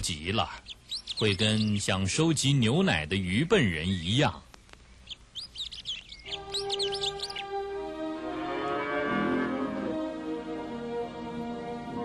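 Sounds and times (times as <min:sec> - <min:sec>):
birds chirping: 0:00.0 - 0:08.2
gentle orchestral music: 0:06.3 - 0:12.0.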